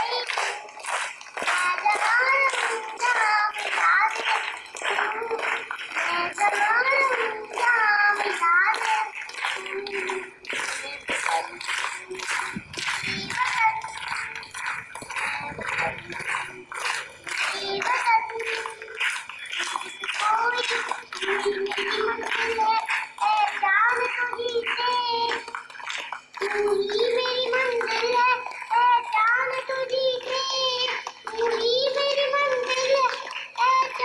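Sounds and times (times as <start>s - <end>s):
girl singing into a microphone: 0.0s - 34.0s
rapid patter of sharp clicks: 0.0s - 34.0s.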